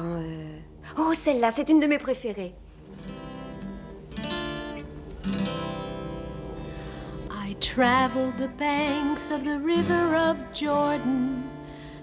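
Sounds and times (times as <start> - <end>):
acoustic guitar chords strummed: 2.8 - 12.0.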